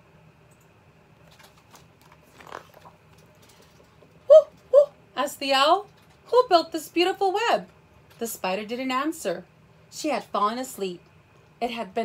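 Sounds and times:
small clicks and rustles: 0.5 - 4.7, 5.8 - 6.3
book page turning: 1.2 - 3.8.

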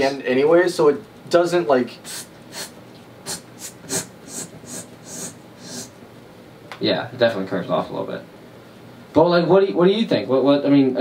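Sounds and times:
person making hissed tss sounds: 2.0 - 6.0.

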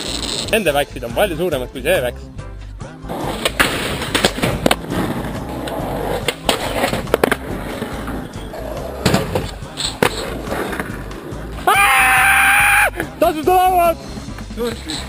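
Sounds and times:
skateboard wheels rolling on asphalt: 0.0 - 0.5, 3.1 - 13.0
skateboard clacking: 3.1 - 11.8
person yelling: 11.6 - 13.9.

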